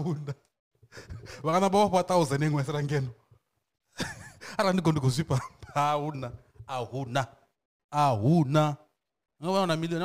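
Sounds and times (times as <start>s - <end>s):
man's voice into microphone: 4.6s - 7.3s, 8.0s - 10.0s.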